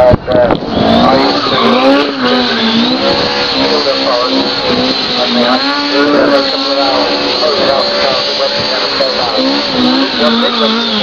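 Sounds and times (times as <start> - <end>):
car engine running hard: 0.0 - 11.0
commentator on loudspeaker: 0.0 - 11.0.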